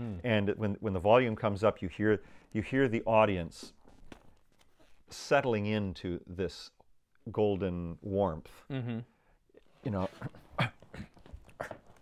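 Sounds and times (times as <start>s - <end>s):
man chuckling softly: 9.8s - 12.0s.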